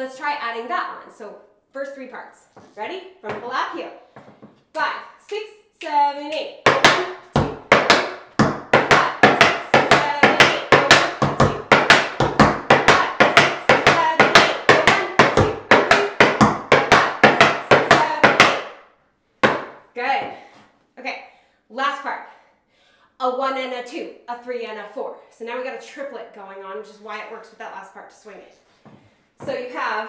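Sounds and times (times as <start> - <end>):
tap shoes on wooden board: 4.2 - 4.6, 6.7 - 18.8, 19.4 - 20.4.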